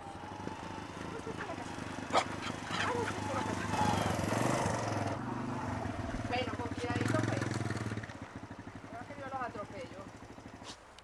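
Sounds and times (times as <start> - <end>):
small motorcycle engine running: 0.0 - 10.8
dogs barking and yipping: 0.5 - 4.7.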